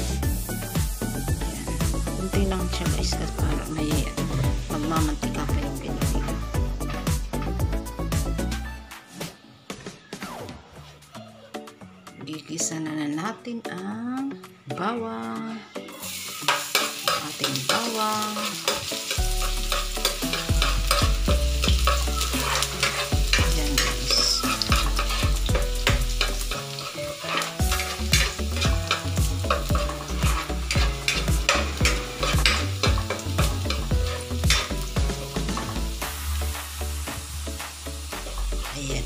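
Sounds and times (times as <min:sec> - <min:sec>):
garlic sizzling in oil: 0:00.0 - 0:07.2, 0:15.9 - 0:39.0
spatula scraping and knocking pan: 0:16.5 - 0:36.0.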